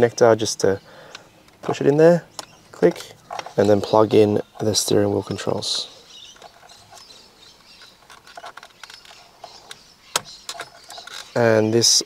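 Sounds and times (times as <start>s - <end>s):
plastic connectors ticking and rustling: 1.0s - 11.5s.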